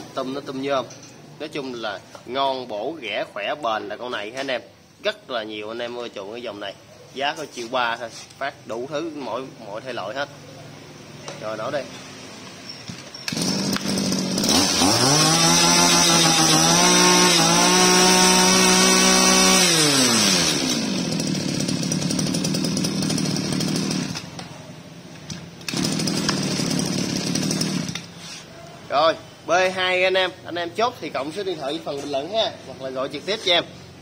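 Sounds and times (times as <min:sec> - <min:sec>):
brush-cutter engine starting and idling: 0:12.9 - 0:28.3.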